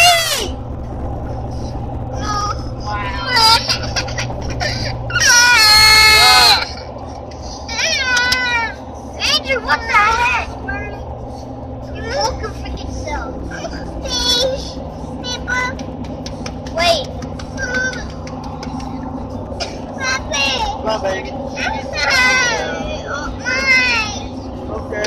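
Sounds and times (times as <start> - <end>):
car engine and tyres at speed: 0.0 - 25.0
children's voices: 16.7 - 18.4, 19.6 - 24.4.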